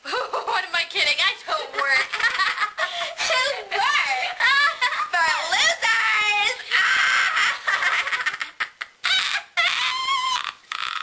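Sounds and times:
girls shrieking laughter: 6.7s - 11.0s.

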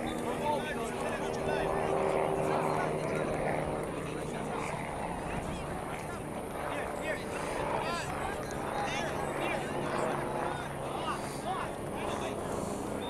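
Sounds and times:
distant indistinct voices: 0.0s - 13.0s.

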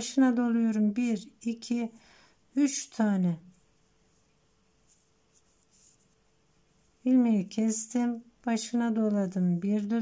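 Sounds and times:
faint steady hum: 0.0s - 10.0s
knitting needles scratching and ticking: 3.5s - 10.0s.

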